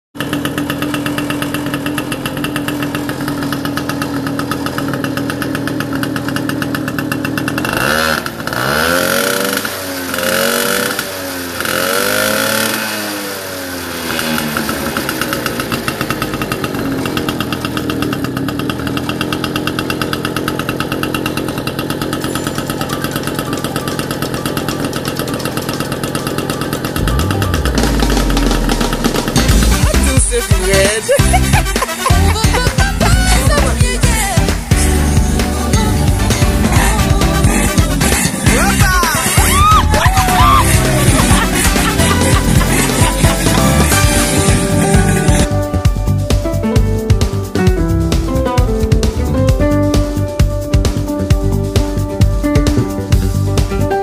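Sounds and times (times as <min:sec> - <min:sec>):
moped engine revving: 0:00.1 - 0:54.0
low rumble: 0:27.0 - 0:30.2.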